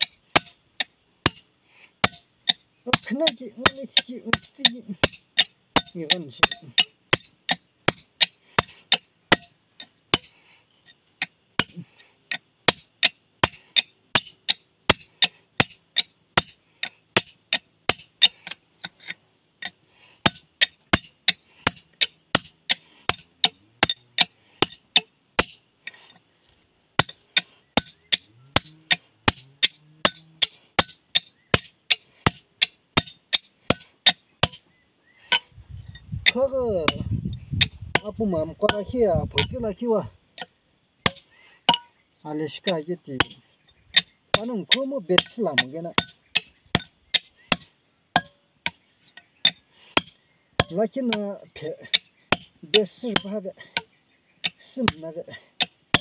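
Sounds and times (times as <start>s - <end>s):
hammer striking steel chisel: 0.0s - 10.3s, 11.2s - 25.6s, 26.4s - 34.7s, 35.3s - 39.7s, 40.4s - 42.0s, 42.6s - 56.0s.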